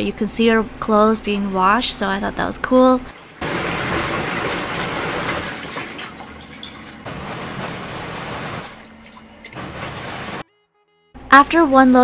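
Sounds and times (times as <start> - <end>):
washing machine churning: 1.6 - 10.4.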